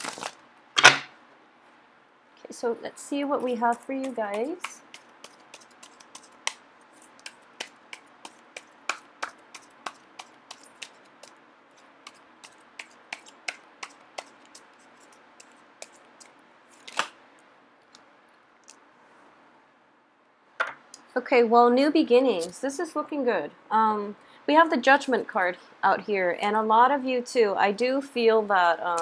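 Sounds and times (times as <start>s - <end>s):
cards being shuffled: 0.0s - 1.0s, 3.4s - 11.4s, 12.0s - 17.2s.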